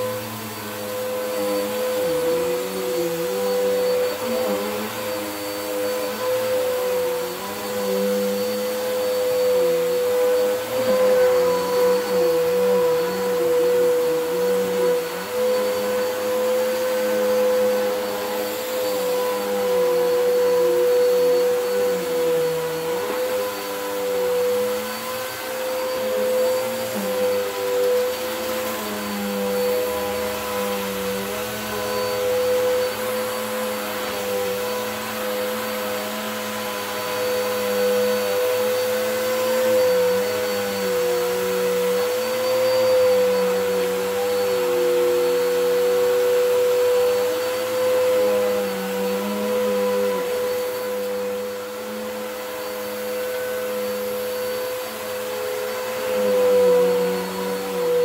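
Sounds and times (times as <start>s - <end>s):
vacuum cleaner on carpet: 0.0s - 58.0s.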